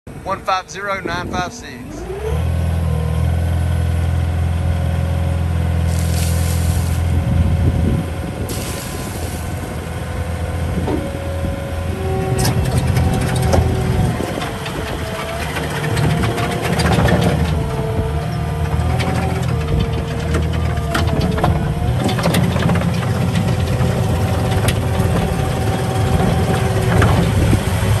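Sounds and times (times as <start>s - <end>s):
diesel engine running hard: 0.1s - 28.0s
knocks and rattles: 12.3s - 27.6s.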